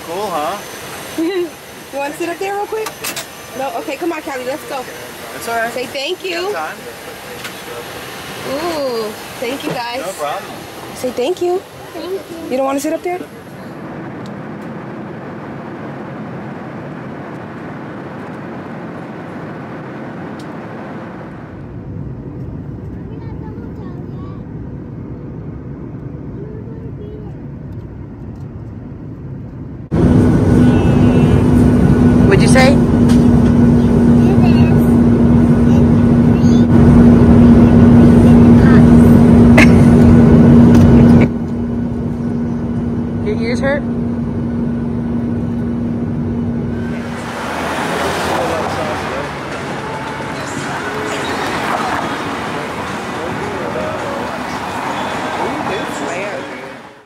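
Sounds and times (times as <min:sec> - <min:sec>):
steady low hum: 0:00.0 - 0:47.4
airliner cabin engine rush: 0:00.0 - 0:57.0.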